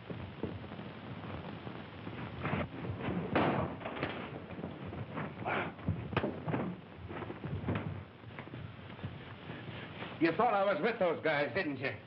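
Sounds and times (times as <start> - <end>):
bodies hitting the floor: 2.2 - 10.2
thumps of blows: 2.4 - 8.5.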